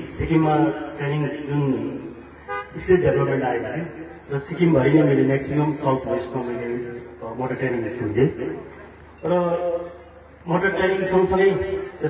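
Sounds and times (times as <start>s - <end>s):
man speaking into a microphone: 0.0s - 12.0s.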